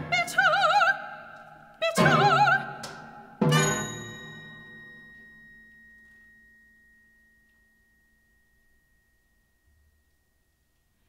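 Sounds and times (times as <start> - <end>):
high bell-like metallic note: 2.9 - 10.8.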